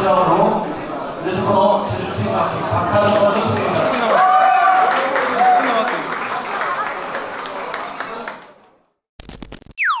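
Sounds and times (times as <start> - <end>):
crowd and hall noise: 0.0 - 9.0
crackling noise burst: 9.2 - 10.0.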